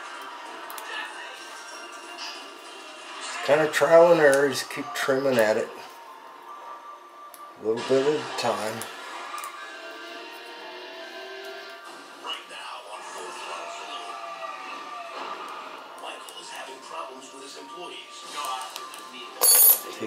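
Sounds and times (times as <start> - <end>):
television music: 0.0 - 20.0
television talk: 0.0 - 20.0.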